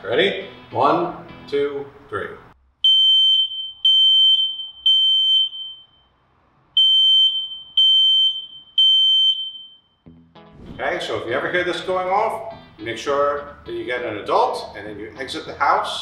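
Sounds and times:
smoke alarm long beeps: 2.8 - 6.2, 6.8 - 10.1.

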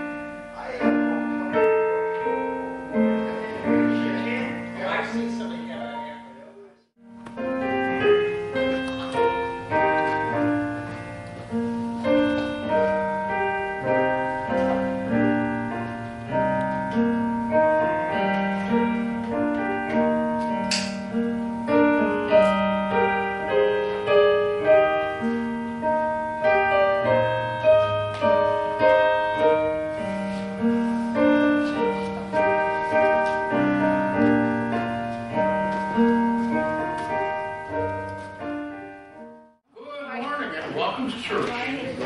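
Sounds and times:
slow piano piece: 0.0 - 39.7.

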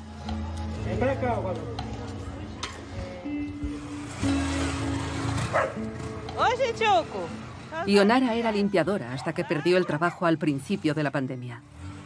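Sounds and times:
background music low notes: 0.0 - 12.0
dog bark: 5.5 - 5.8.

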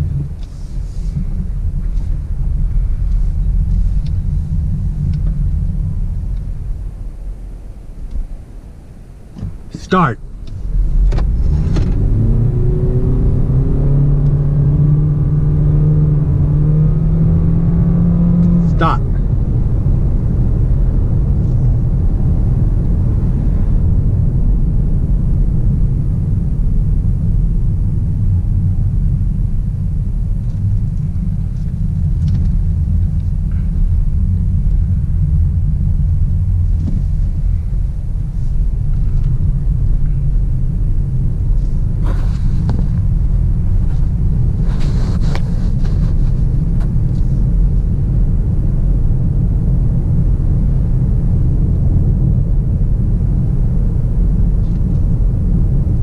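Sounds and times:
tyre and road rumble: 0.0 - 56.0
electric car drone rising: 10.4 - 18.6.

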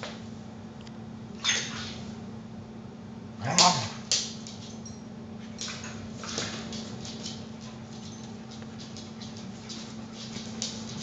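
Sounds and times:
dogs scuffling on wooden floor: 3.8 - 11.0.

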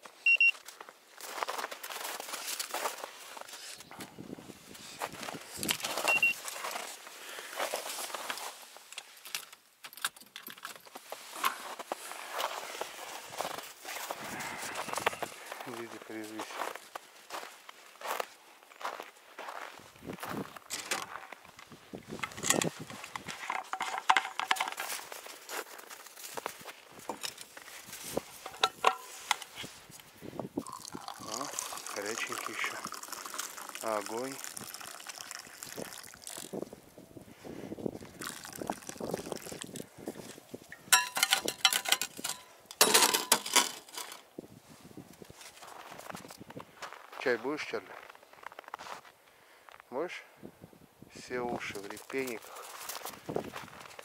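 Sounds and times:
short high beeps: 0.2 - 0.6, 6.1 - 6.4
footsteps in snow: 0.6 - 8.9, 11.0 - 22.1, 24.7 - 30.3, 44.7 - 49.8, 51.8 - 54.0.

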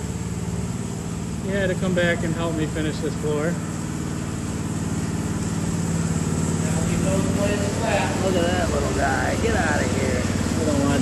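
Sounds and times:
power trowel engine running: 0.0 - 11.0.

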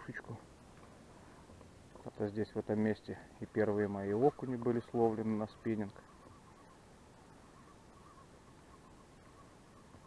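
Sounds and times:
distant bird calls: 0.0 - 10.0.

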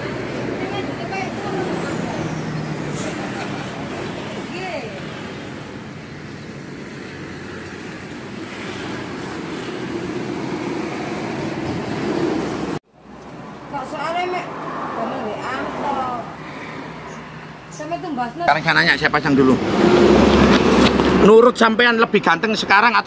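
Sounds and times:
road traffic noise: 0.0 - 23.0.

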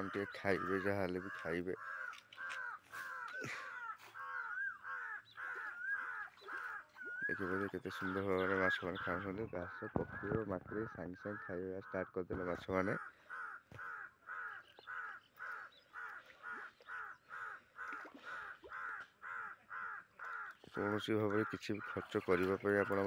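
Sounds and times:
crow cawing: 0.0 - 23.0.

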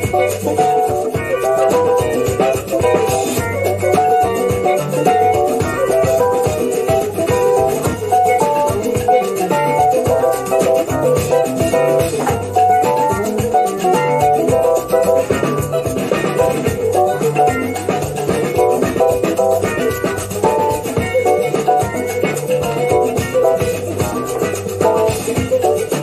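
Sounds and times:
bass guitar: 0.0 - 26.0
drums: 0.0 - 26.0
electric guitars: 0.0 - 26.0
progressive rock music: 0.0 - 26.0
shaker percussion: 0.0 - 26.0.

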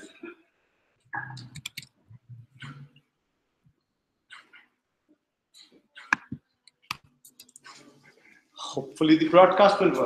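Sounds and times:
computer mouse clicks: 1.2 - 1.9.

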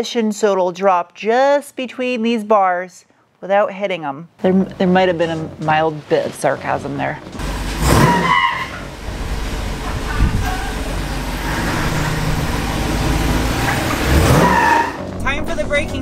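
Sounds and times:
car driving rumble: 4.5 - 16.0
tire squeals: 7.4 - 15.1.

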